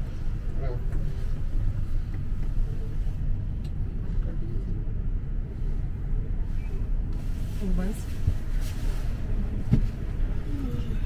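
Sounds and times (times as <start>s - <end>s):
cable car cabin rumble: 0.0s - 11.0s.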